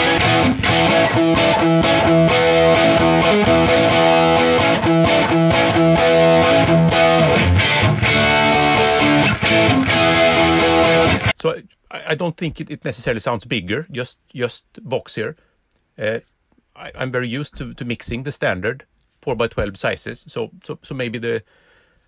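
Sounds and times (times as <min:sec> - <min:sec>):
overdriven electric guitar: 0:00.0 - 0:11.4.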